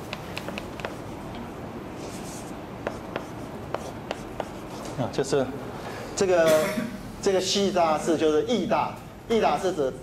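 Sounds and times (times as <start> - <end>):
chalk tapping on chalkboard: 0.0 - 5.0
chalk writing on chalkboard: 0.1 - 5.0.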